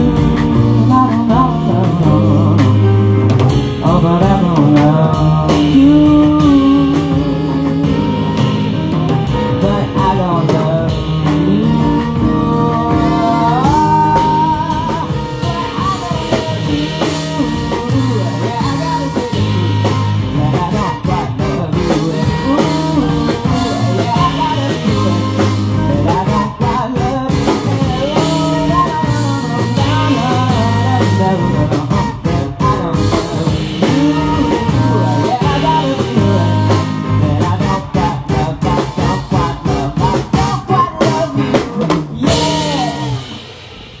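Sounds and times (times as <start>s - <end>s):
rock band playing: 0.0s - 44.0s
saxophone: 0.0s - 44.0s.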